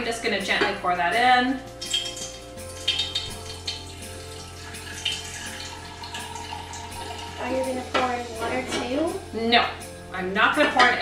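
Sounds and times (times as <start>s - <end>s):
small glass clinks: 1.8s - 3.8s
liquid trickling into glass jar: 1.8s - 7.8s.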